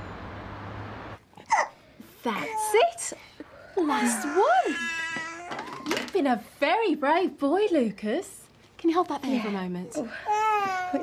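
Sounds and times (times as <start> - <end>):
baby crying: 3.9 - 5.9, 10.0 - 11.0.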